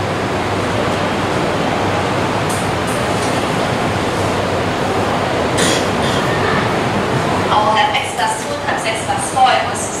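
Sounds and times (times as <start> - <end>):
rushing background noise: 0.0 - 10.0.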